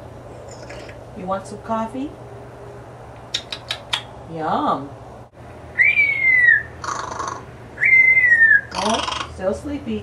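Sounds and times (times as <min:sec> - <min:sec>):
parrot whistling: 0:05.8 - 0:09.2.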